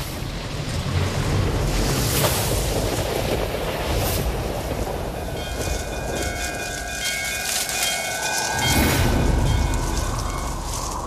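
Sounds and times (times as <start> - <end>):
storm-like wind: 0.0 - 11.0
low rumble: 0.3 - 11.0.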